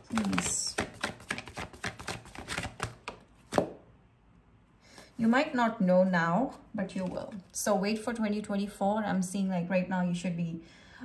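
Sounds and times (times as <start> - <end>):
cards being shuffled: 0.0 - 3.8, 6.8 - 7.6.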